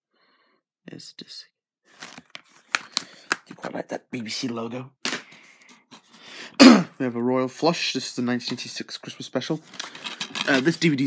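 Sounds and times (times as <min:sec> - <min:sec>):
person coughing: 0:06.6 - 0:07.0.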